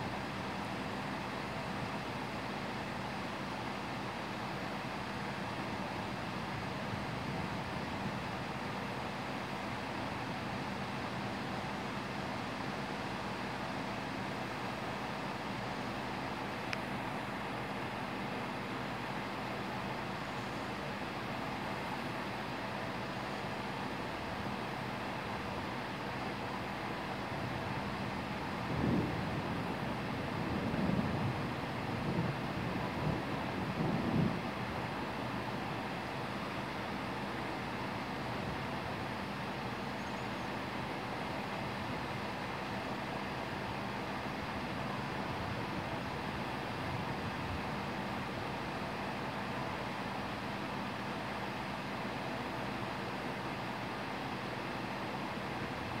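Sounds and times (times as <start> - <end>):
heavy rain: 0.0 - 56.0
thunder rumbling: 28.6 - 34.8.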